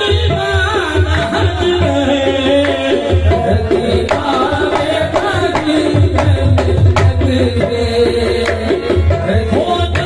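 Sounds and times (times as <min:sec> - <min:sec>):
harmonium melody: 0:00.0 - 0:10.0
tabla beat: 0:00.0 - 0:10.0.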